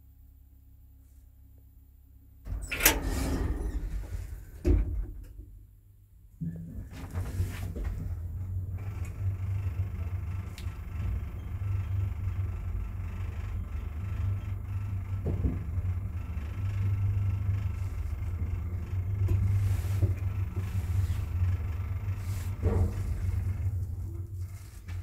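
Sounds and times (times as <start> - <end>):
elevator rumble and hum: 2.5 - 25.0
elevator knock: 14.4 - 24.2.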